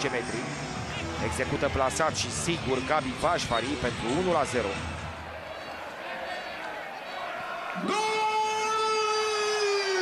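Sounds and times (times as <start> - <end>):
stadium crowd hubbub: 0.0 - 10.0.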